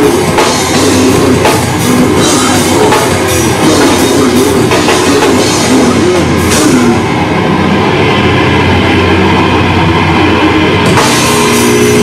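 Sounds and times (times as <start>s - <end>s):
cymbal crash: 0.0s - 12.0s
heavy metal band playing: 0.0s - 12.0s.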